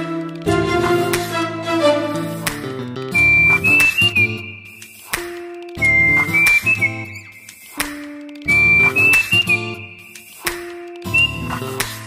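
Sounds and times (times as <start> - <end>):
chordal accompaniment: 0.0 - 3.0
whistle-like melody: 3.1 - 12.0.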